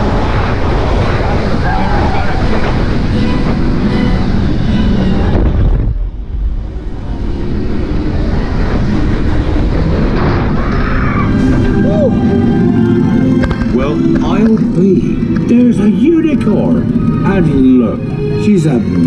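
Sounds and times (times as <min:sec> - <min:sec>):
roller coaster rumbling on track: 0:00.0 - 0:19.0.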